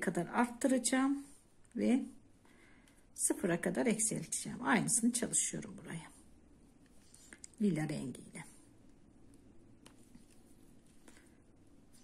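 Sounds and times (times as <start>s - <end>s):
soft handling noise: 6.1s - 7.6s, 8.6s - 12.0s.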